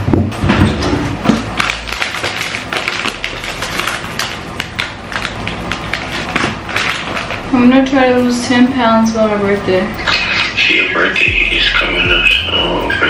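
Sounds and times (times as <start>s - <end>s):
plastic packet crinkling: 1.4s - 7.5s.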